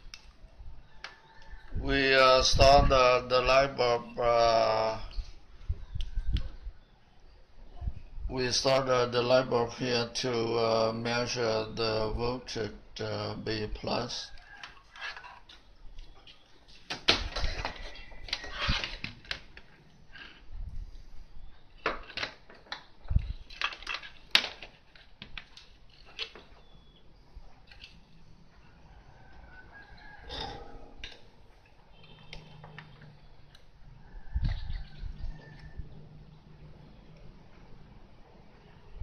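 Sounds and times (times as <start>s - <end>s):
clicks and knocks of handled wires: 14.6s - 20.4s, 21.8s - 26.6s.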